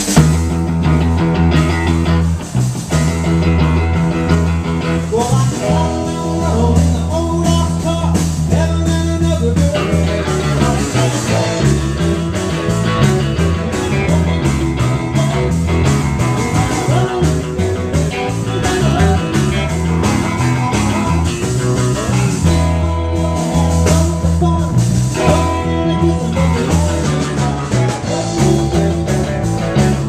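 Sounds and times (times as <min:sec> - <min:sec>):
drums: 0:00.0 - 0:30.0
electric bass walking line: 0:00.0 - 0:30.0
electric guitar: 0:00.0 - 0:30.0
man singing lead: 0:04.8 - 0:30.0.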